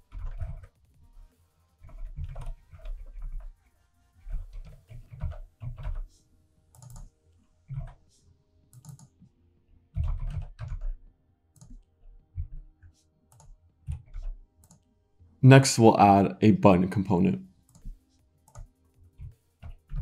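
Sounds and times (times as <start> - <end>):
computer keyboard typing: 0.0 - 0.8, 1.8 - 3.5, 4.4 - 6.1, 6.8 - 7.1, 8.8 - 9.1, 9.9 - 11.0.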